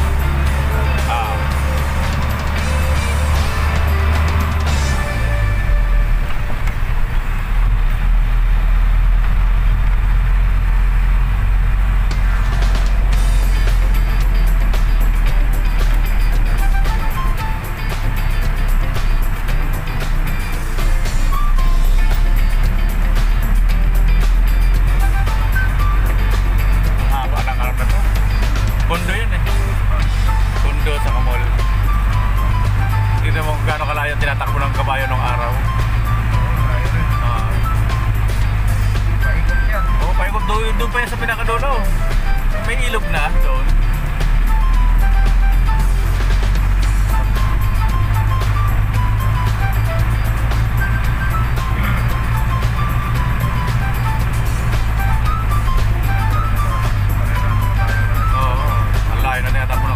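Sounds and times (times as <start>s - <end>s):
music playing: 0.0s - 59.9s
vehicle engine drone: 0.0s - 59.9s.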